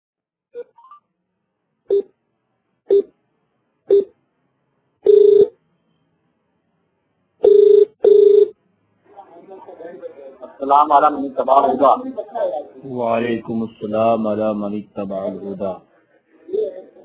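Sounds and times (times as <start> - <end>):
telephone line beeps: 5.1 - 5.6, 7.4 - 8.6
telephone ringback tones: 5.1 - 5.6, 7.4 - 8.6.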